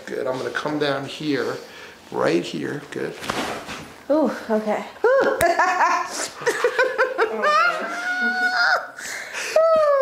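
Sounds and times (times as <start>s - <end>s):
woman giggling: 5.0s - 10.0s.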